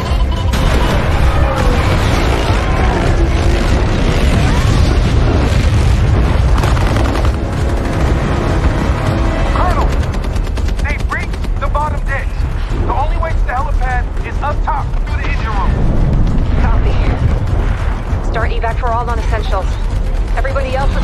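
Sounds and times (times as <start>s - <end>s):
automatic gunfire: 0.5s - 8.6s
heavy low rumble with booms: 0.6s - 21.0s.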